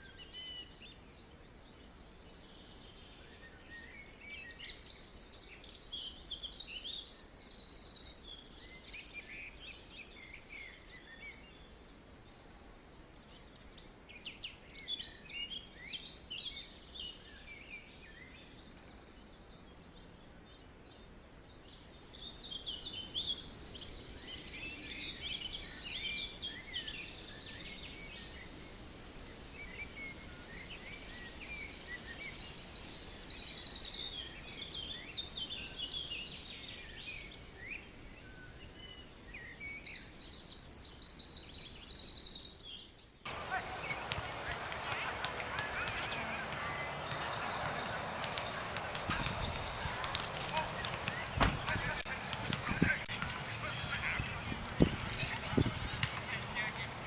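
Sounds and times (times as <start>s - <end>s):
birds chirping and trilling: 0.0s - 57.0s
faint steady hiss: 43.3s - 57.0s.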